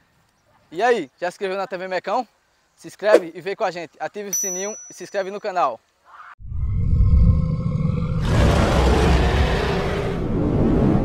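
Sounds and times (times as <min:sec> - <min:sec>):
deep loud rumble: 0:06.4 - 0:11.0.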